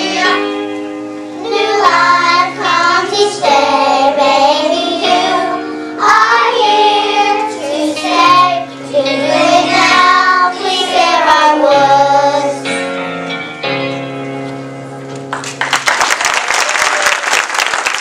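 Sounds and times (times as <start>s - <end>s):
children singing: 0.0s - 0.5s, 1.4s - 12.7s
instrumental accompaniment: 0.0s - 15.8s.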